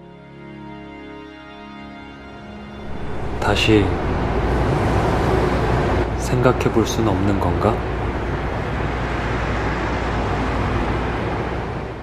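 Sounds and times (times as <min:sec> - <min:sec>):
car engine and road noise: 0:02.4 - 0:12.0.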